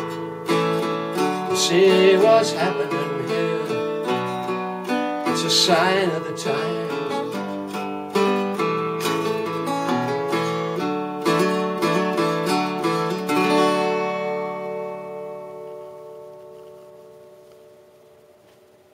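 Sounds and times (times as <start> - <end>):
acoustic guitar strumming chords: 0.0 - 18.9.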